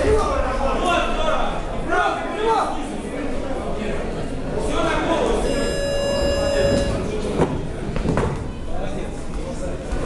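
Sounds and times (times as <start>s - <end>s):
electronic timer buzzer: 5.4s - 7.1s.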